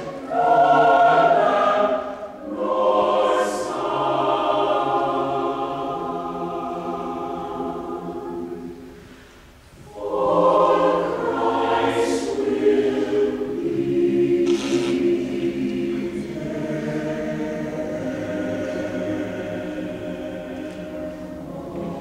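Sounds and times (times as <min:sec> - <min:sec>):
mixed choir singing: 0:00.0 - 0:22.0.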